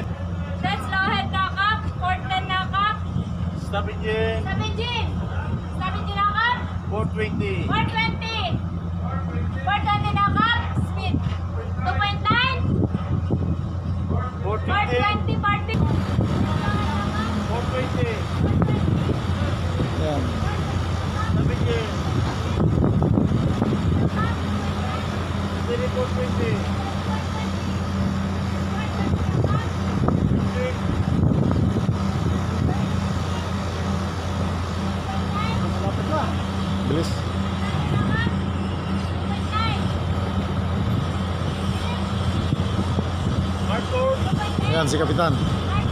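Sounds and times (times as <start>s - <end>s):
ferry engines humming: 0.0s - 45.9s
voices talking: 0.0s - 45.9s.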